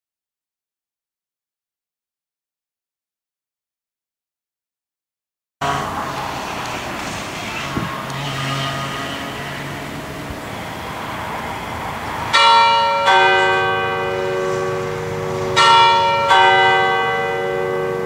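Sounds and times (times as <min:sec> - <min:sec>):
church bells ringing: 0:05.6 - 0:18.0
road traffic hiss: 0:05.6 - 0:18.0.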